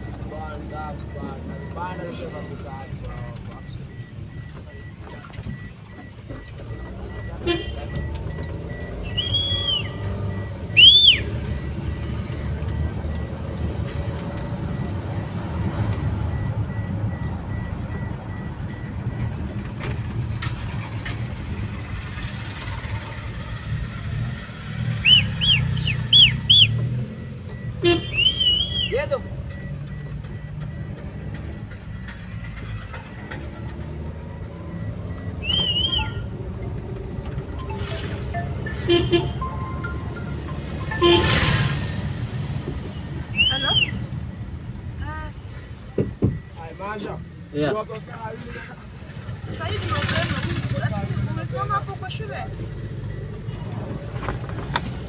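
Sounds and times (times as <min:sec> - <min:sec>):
vehicle road and engine rumble: 0:00.0 - 0:55.0
car horn toots: 0:07.4 - 0:08.0, 0:27.8 - 0:29.0, 0:38.7 - 0:40.0, 0:40.8 - 0:41.8.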